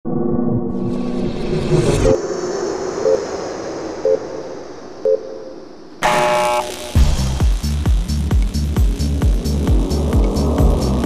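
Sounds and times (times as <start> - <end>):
whooshing rumble: 0.0 - 6.0
short electronic beeps: 5.0 - 7.0.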